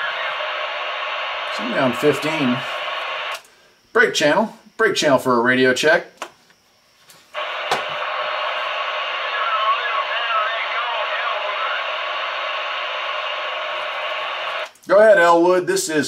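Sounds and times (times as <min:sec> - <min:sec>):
radio voice: 0:00.0 - 0:03.3, 0:07.4 - 0:14.6
radio static: 0:00.0 - 0:03.4, 0:07.4 - 0:14.8.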